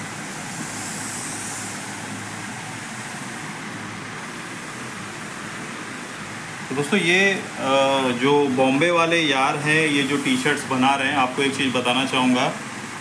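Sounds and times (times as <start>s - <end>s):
even hiss: 0.0s - 13.0s.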